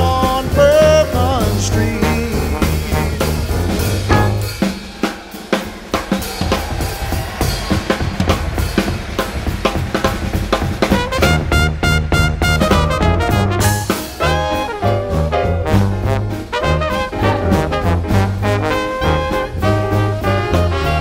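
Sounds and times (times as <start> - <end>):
bass line: 0.0 - 4.8, 10.9 - 21.0
jazz horns: 0.0 - 5.1, 10.8 - 21.0
drum kit playing: 0.0 - 21.0.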